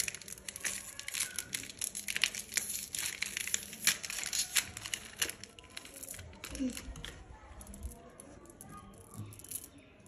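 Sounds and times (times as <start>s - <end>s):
plastic wrapper crinkling: 0.0s - 7.2s.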